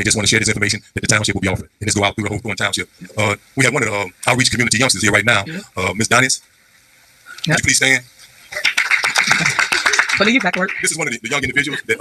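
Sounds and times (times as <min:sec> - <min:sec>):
clapping: 0:08.6 - 0:11.1
man laughing: 0:11.1 - 0:12.0.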